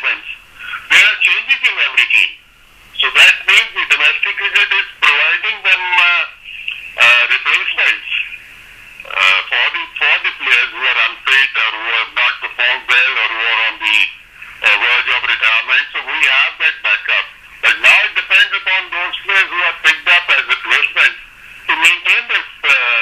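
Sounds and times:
man talking over telephone: 0.0s - 2.4s, 3.0s - 8.4s, 9.0s - 23.0s.

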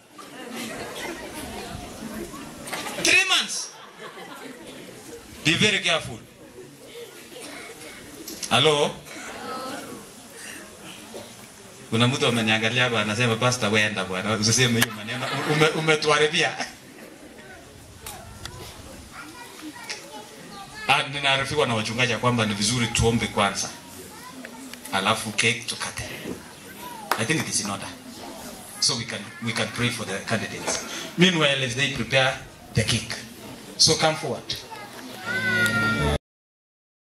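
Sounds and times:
crowd chatter: 0.0s - 36.2s
man speaking loudly: 3.0s - 3.7s, 20.9s - 23.8s
high drawn-out cry: 35.2s - 36.2s.

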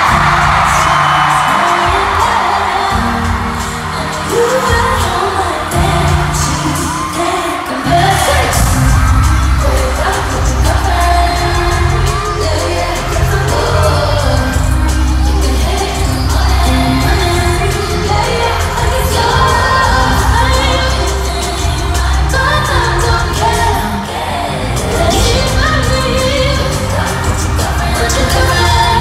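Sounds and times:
bass-driven backing track: 0.0s - 7.2s, 7.9s - 29.0s
crowd noise: 0.0s - 29.0s
person singing: 0.0s - 29.0s.

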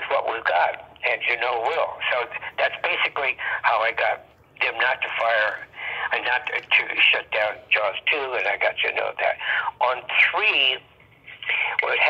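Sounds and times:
man talking on phone: 0.0s - 12.0s.

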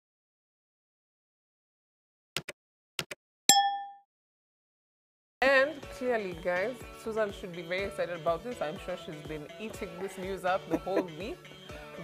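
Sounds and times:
bright bell ding: 3.5s - 4.0s.

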